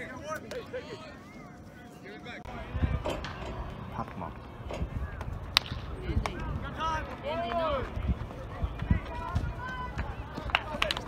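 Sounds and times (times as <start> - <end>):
baseball bat hitting ball: 5.1 - 6.4
spectators shouting: 6.4 - 10.8.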